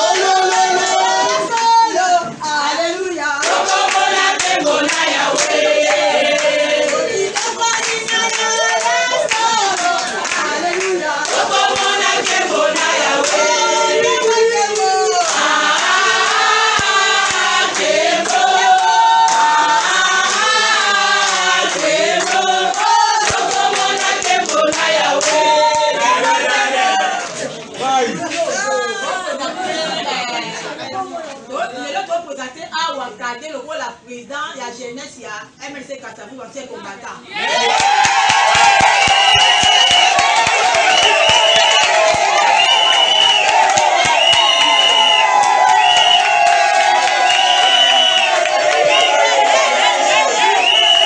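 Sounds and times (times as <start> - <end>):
group of women singing: 0.0 - 27.6, 46.7 - 51.0
hand clapping: 14.8 - 18.4, 21.2 - 25.8, 37.7 - 49.2.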